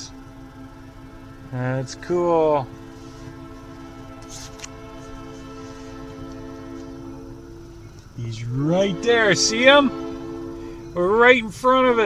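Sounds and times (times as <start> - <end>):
locomotive air horn: 0.0 - 12.0.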